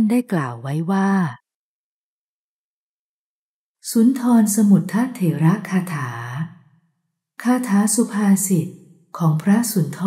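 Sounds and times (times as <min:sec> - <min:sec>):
person narrating: 0:00.0 - 0:01.4.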